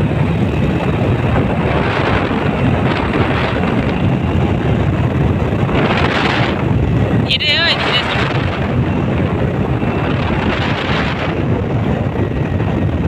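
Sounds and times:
motorcycle engine and road noise: 0.0s - 13.0s
wind buffeting microphone: 0.0s - 13.0s.

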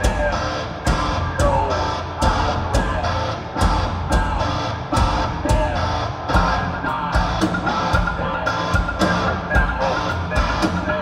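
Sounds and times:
metal band playing: 0.0s - 11.0s.

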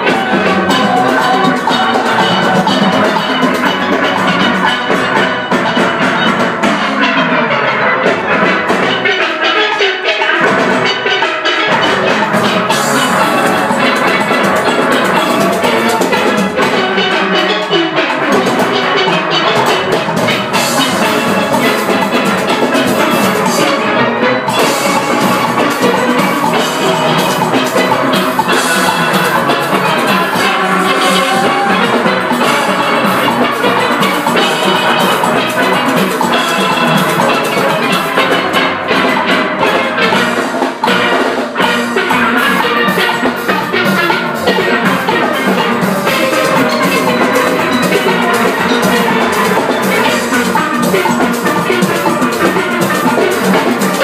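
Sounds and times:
steady percussion beat: 0.0s - 54.0s
steel pans playing melody: 0.0s - 54.0s.

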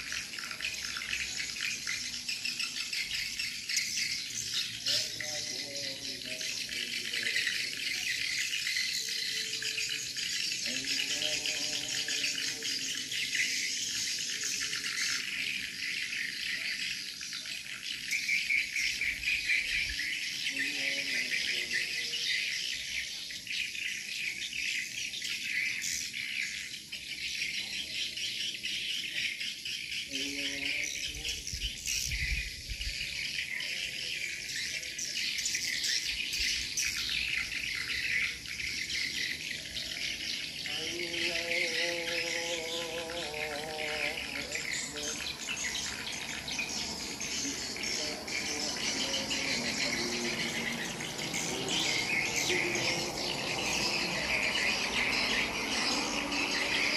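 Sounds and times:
high-pitched chirping chorus: 0.0s - 56.9s.

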